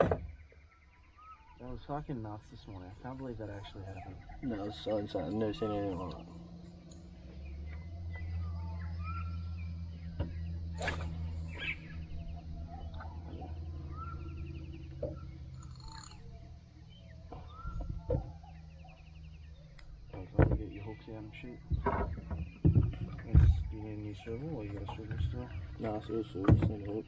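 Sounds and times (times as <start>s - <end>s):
faint bird trills: 0.0s - 20.0s
birds whistling: 0.0s - 27.0s
low hum: 2.6s - 24.7s.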